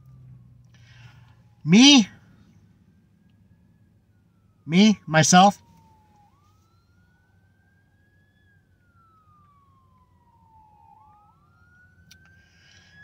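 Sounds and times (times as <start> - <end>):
faint siren wailing: 0.0 - 13.0.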